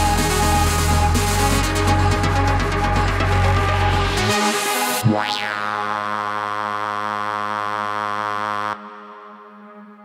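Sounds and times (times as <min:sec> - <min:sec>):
sustained synthesizer tone: 0:00.0 - 0:10.0.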